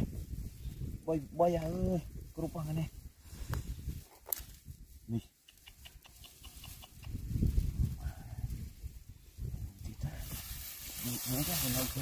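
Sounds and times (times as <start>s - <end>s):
tall grass rustling: 0.0s - 5.2s, 5.9s - 12.0s.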